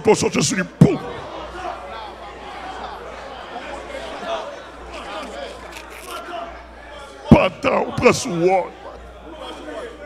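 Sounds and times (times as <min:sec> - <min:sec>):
faint chatter of people: 0:00.7 - 0:10.0.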